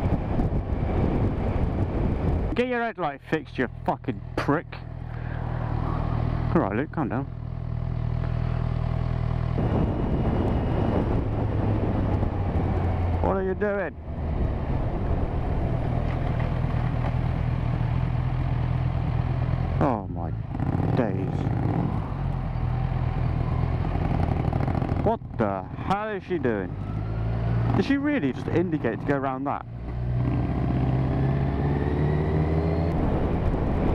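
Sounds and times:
rough wind noise: 0.0 - 3.0, 9.3 - 17.1, 29.8 - 33.9
motorcycle riding along: 0.0 - 33.9
motorcycle engine idling: 4.2 - 9.5.

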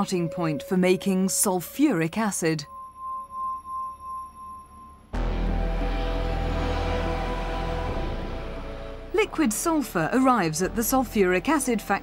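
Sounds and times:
high pure tone: 0.0 - 10.5.

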